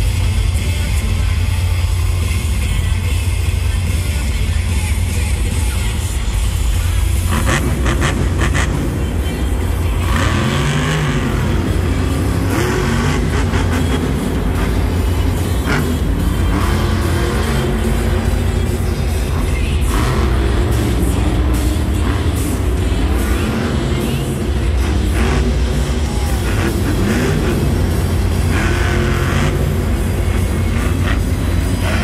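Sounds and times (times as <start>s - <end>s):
loud arena music: 0.0s - 32.0s
monster truck engine revving: 0.0s - 32.0s.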